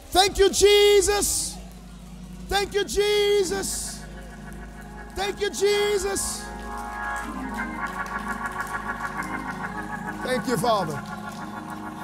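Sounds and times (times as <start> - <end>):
organ music: 0.0 - 12.0.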